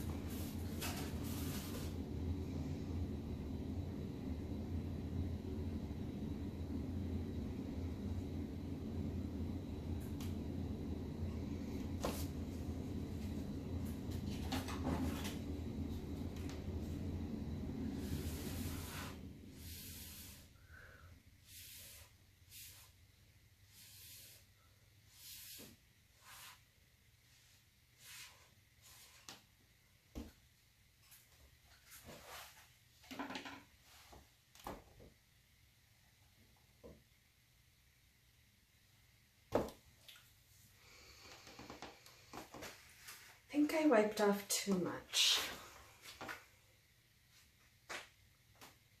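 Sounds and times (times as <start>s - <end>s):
low steady hum: 0.0s - 25.3s, 35.0s - 47.7s
rustles and soft wipes: 8.8s - 20.5s, 31.0s - 33.0s, 33.8s - 34.5s, 41.4s - 44.3s.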